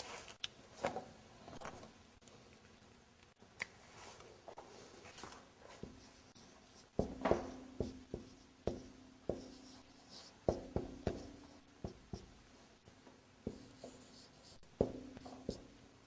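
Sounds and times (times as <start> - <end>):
marker writing on a whiteboard: 5.7 - 12.4, 13.4 - 15.8.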